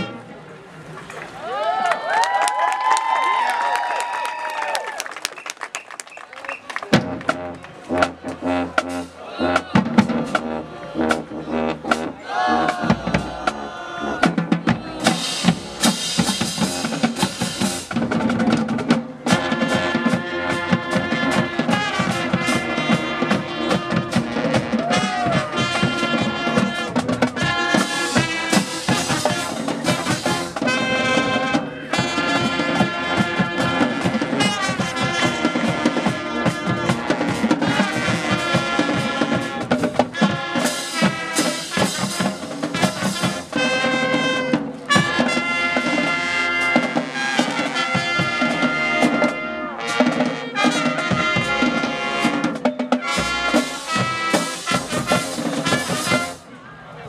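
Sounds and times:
marching band brass chords: 0:00.0 - 0:00.6, 0:06.6 - 0:56.6
drumline beat with bass drums: 0:05.2 - 0:56.5.

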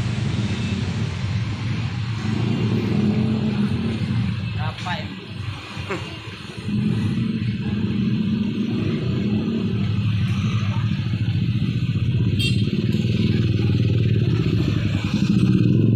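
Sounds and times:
motorcycle and car engines in traffic: 0:00.0 - 0:15.9.

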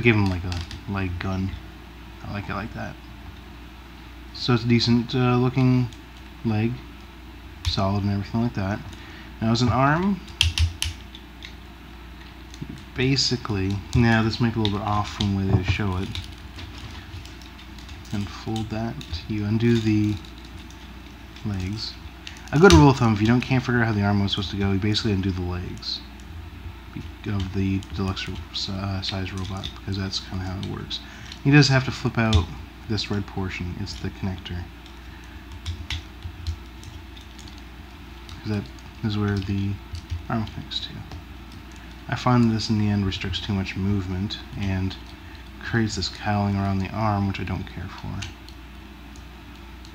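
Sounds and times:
low steady hum: 0:00.0 - 0:49.9.

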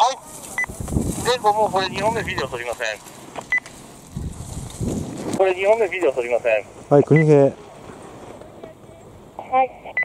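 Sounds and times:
low rumbling noise: 0:00.1 - 0:06.9.

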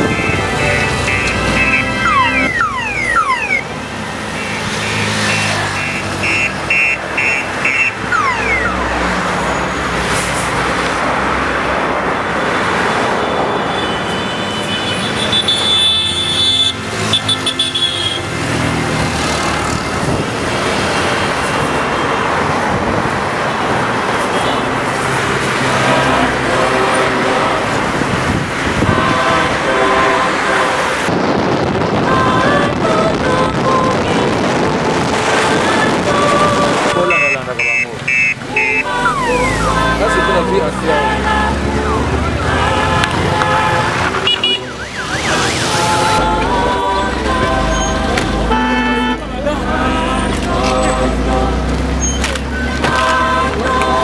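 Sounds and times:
horns beeping: 0:00.0 - 0:11.1, 0:12.1 - 0:19.4, 0:23.5 - 0:54.0
car engine and tyre noise: 0:00.0 - 0:54.0.

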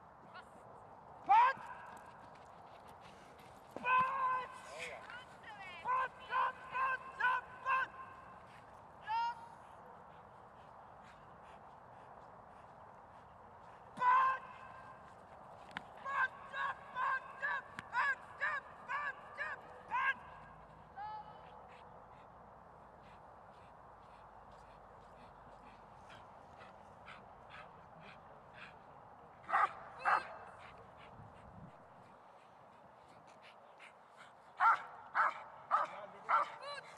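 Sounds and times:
dog barking: 0:29.5 - 0:30.4, 0:34.6 - 0:36.7.

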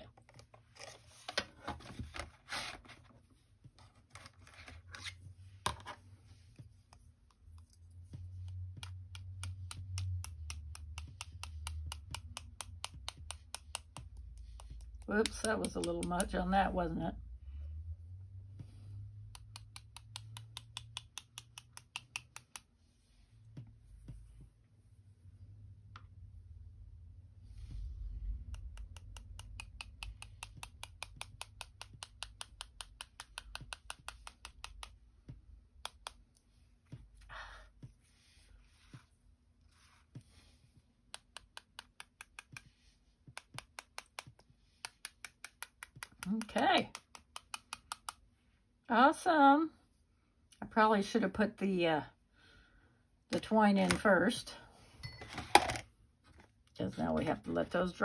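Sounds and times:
paintbrush tapping: 0:06.6 - 0:16.6, 0:19.2 - 0:22.7, 0:28.5 - 0:36.2, 0:41.1 - 0:48.2.

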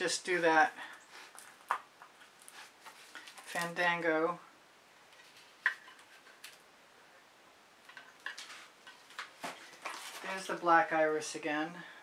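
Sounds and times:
soft rustles: 0:00.8 - 0:03.7, 0:05.1 - 0:06.6, 0:07.9 - 0:10.7.

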